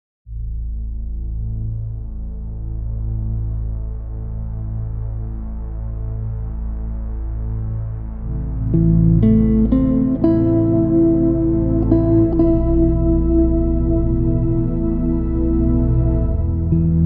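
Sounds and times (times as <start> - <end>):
deep droning music pad: 0.3 - 17.0.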